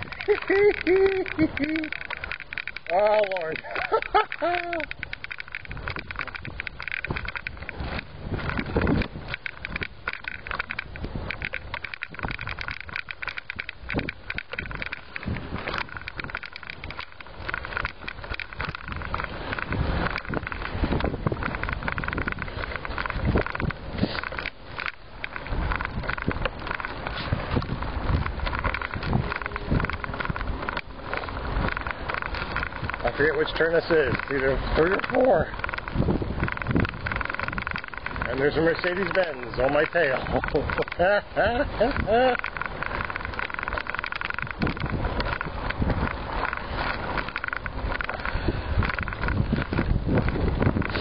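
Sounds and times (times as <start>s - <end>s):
clicks and rattles: 0.0s - 51.0s.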